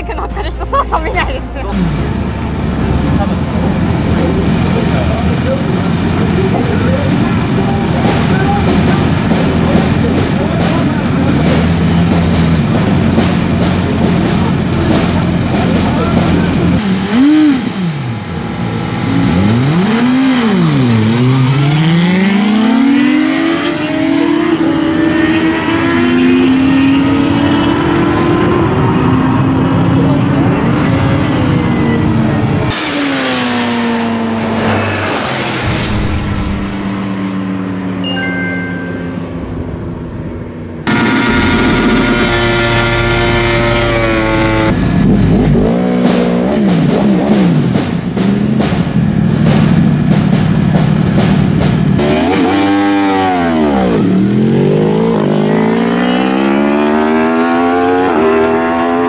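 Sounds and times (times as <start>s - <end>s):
motorcycle engines revving: 0.0s - 59.0s.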